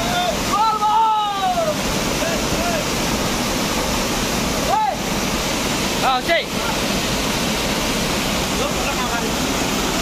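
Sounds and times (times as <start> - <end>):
waterfall rushing: 0.0 - 10.0.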